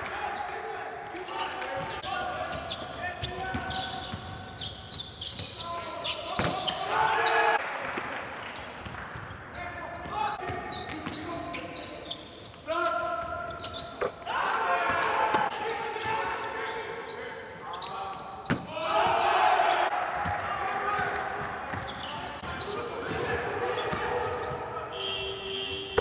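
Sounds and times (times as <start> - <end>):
sneakers squeaking: 0.2 - 7.6, 8.6 - 19.4, 21.7 - 26.0
players calling out: 9.9 - 26.0.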